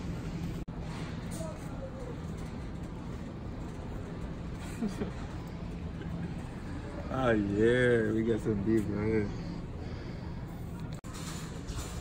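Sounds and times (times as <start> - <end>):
faint hum: 0.0 - 11.4
store background rumble: 0.0 - 12.0.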